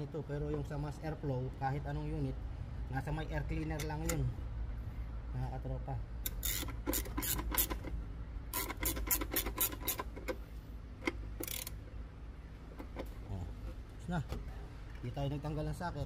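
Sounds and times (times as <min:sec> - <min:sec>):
socket ratchet clicking: 0:06.2 - 0:10.4, 0:11.0 - 0:11.8.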